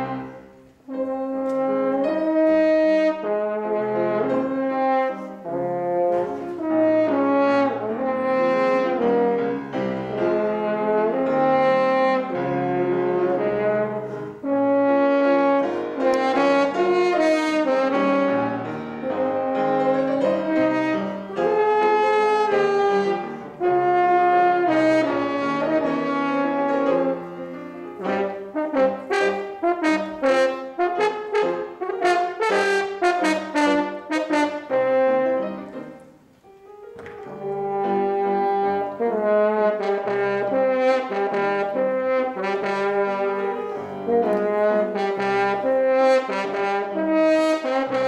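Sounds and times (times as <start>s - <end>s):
french horn playing: 0.0s - 36.2s, 37.3s - 48.0s
piano accompaniment: 0.0s - 48.0s.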